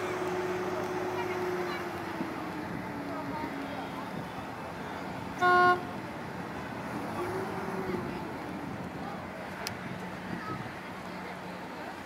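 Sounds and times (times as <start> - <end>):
faint distant voices: 0.0 - 12.0.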